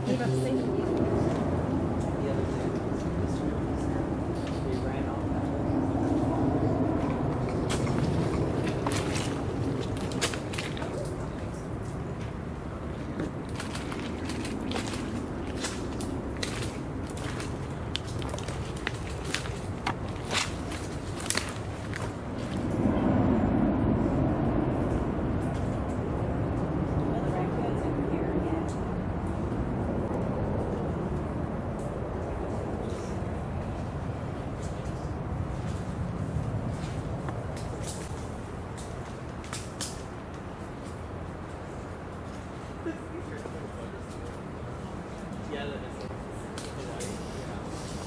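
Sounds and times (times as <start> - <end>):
low steady rumble: 0.0 - 48.0
twigs snapping: 7.4 - 12.0, 13.3 - 22.8, 36.4 - 41.0
footsteps through dry leaves: 13.6 - 22.7.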